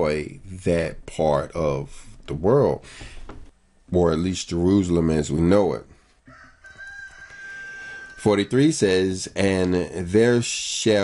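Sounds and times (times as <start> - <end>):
distant rooster crowing: 6.3 - 8.4.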